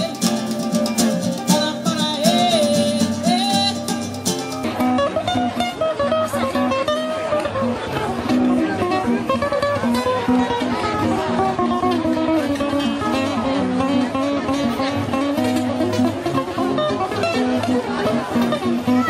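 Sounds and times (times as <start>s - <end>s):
band with drum kit and cymbals: 0.0s - 4.8s
nylon-string guitars plucked: 0.0s - 19.0s.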